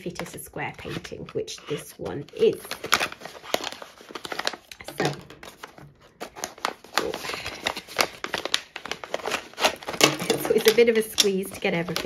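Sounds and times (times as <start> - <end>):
plastic pouch crinkling: 2.3 - 12.0.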